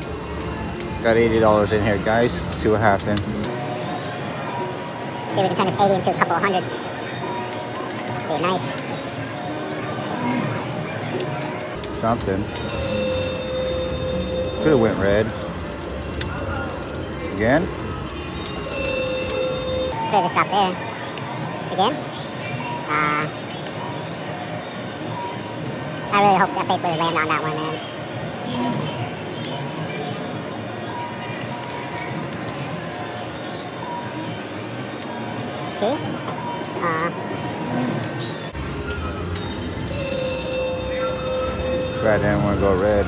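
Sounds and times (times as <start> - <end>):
bell-like slot machine ringing: 0.0 - 7.6, 12.4 - 20.9, 24.0 - 26.8, 35.4 - 43.0
casino background noise: 0.0 - 43.0.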